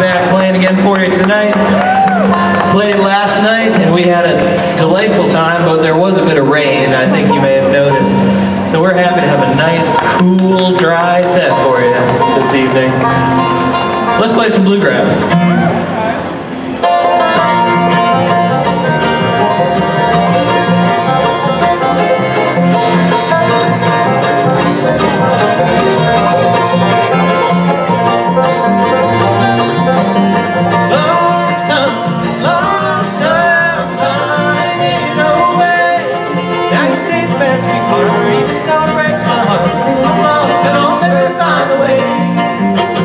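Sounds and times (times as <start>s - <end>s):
bluegrass band playing: 0.0s - 43.0s.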